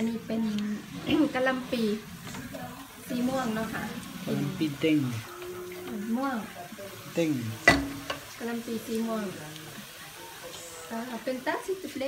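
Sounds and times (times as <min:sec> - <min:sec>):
wooden spoon stirring in metal pot: 0:00.0 - 0:11.4
faint sizzling: 0:00.0 - 0:12.0.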